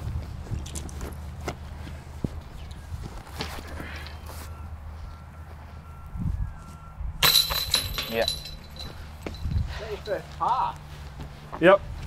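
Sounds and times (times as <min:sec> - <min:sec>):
disc hitting basket chains: 0:07.2 - 0:10.2.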